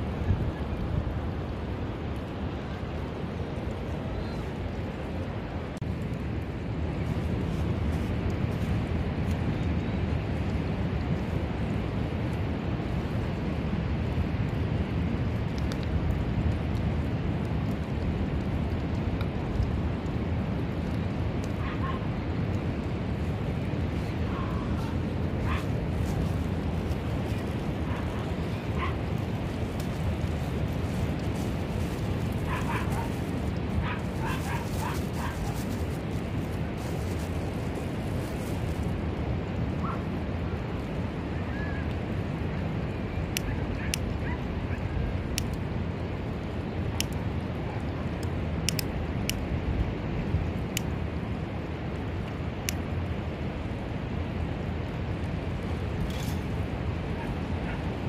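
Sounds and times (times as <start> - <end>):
wind and surf rumble: 0.0 - 58.0.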